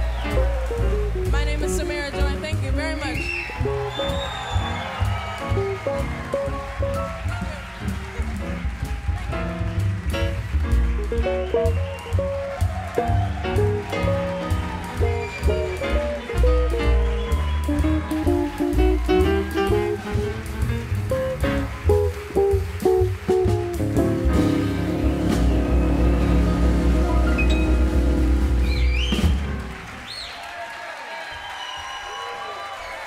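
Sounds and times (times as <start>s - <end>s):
jazz quartet playing: 0.0s - 29.9s.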